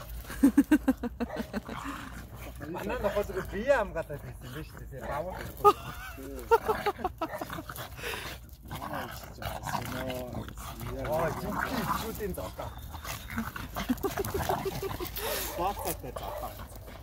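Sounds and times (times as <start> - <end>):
dogs play-fighting vocalisations: 0.0 - 17.0
people talking: 8.8 - 12.7, 14.1 - 16.7.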